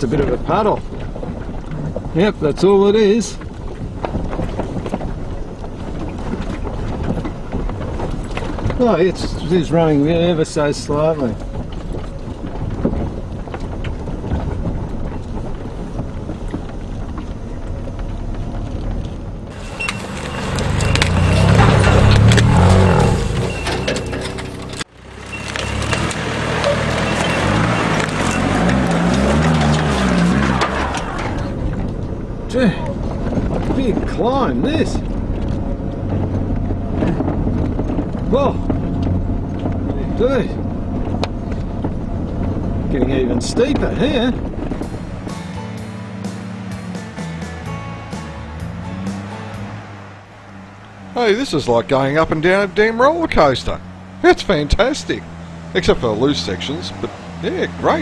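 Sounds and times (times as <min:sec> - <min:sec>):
tyres spinning in loose dirt: 0:00.0 - 0:47.5, 0:48.7 - 0:58.0
off-road vehicle engine revving: 0:18.0 - 0:58.0.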